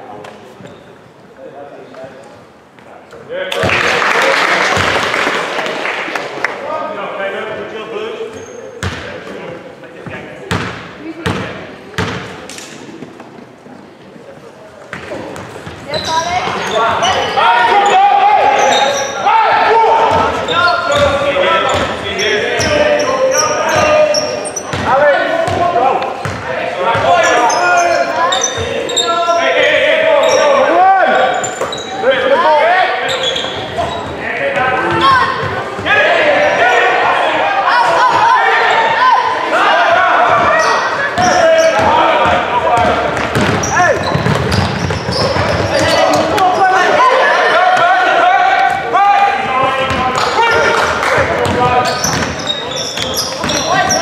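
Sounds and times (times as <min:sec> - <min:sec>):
basketball bouncing on wooden floor: 0:41.2 - 0:46.3, 0:51.3 - 0:52.4.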